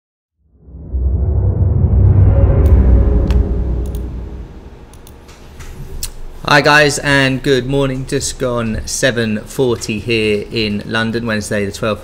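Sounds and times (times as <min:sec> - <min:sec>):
deep rumbling swell: 0:00.4 - 0:05.2.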